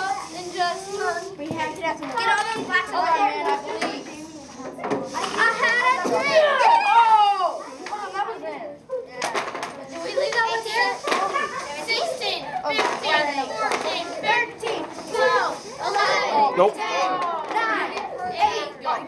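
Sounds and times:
children talking and calling out: 0.0 - 19.0.

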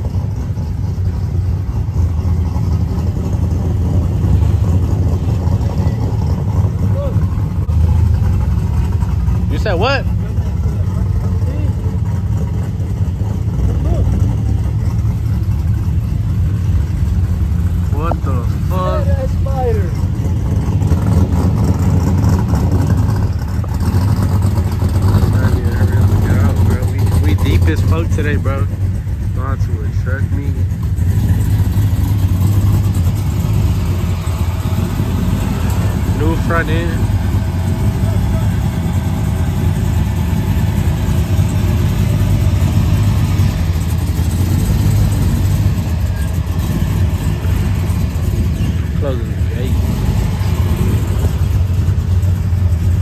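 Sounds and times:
truck engines idling: 0.0 - 53.0.

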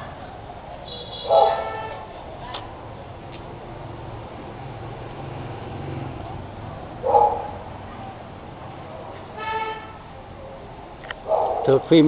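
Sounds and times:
street traffic hum: 0.0 - 12.0
vehicle horn toot: 0.9 - 2.0, 9.4 - 10.0.

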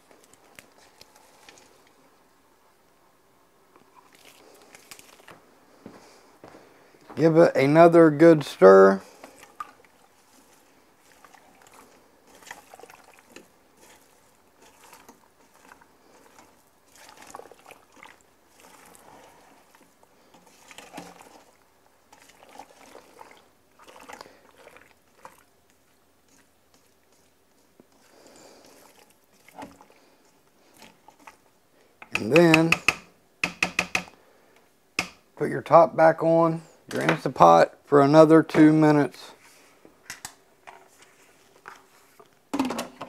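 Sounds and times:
spoon stirring thick pasta: 9.0 - 33.0.

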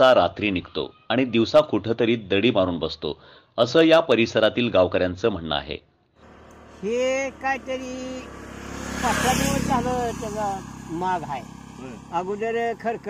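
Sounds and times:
man talking: 0.0 - 5.8, 6.8 - 8.4, 9.0 - 13.0
motorcycle passing: 6.2 - 13.0.

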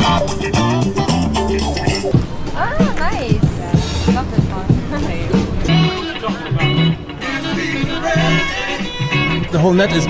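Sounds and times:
held bass notes: 0.0 - 10.0
song with singing voice: 5.4 - 10.0.

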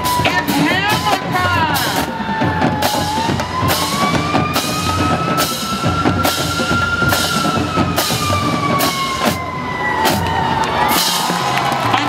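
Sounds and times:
drumline hitting accents: 0.0 - 12.0.

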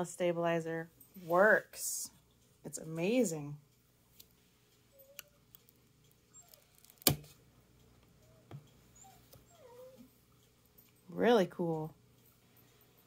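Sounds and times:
sharp click: 6.8 - 7.4.

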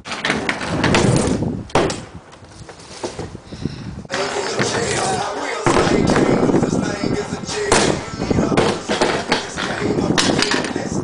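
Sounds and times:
scooter wheels rumbling on wood: 0.0 - 3.4, 4.1 - 11.0.

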